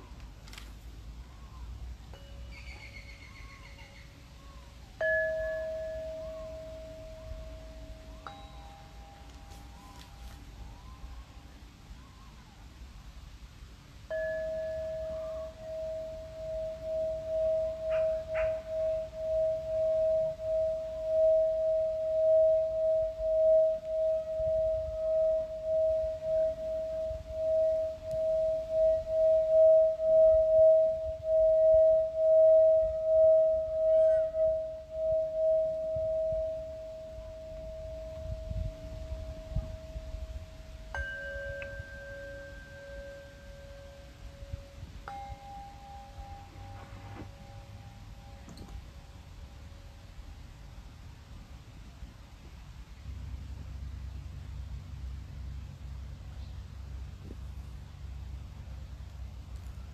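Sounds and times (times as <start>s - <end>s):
lower bowl struck and ringing: 2.1s - 11.6s, 14.0s - 50.1s
singing bowl ringing: 2.1s - 11.6s, 14.0s - 50.2s.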